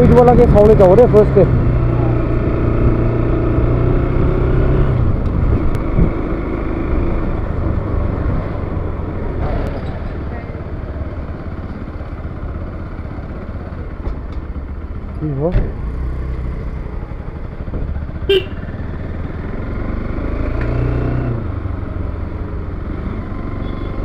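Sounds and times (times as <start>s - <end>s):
motorcycle engine running: 0.0s - 20.4s.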